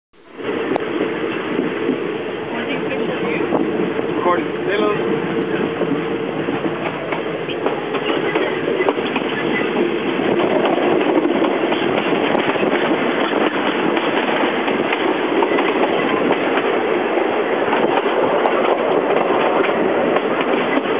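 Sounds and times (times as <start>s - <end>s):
train wheels rumbling on rail: 0.2s - 20.9s.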